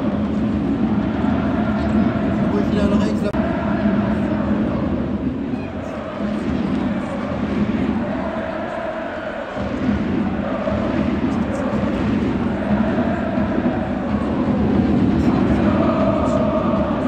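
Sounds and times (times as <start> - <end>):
football crowd chanting: 0.0 - 17.0.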